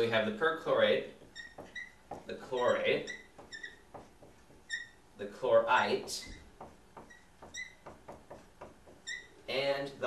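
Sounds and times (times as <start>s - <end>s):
marker writing on whiteboard: 0.7s - 9.5s
marker squeak: 1.2s - 5.0s, 6.0s - 9.5s.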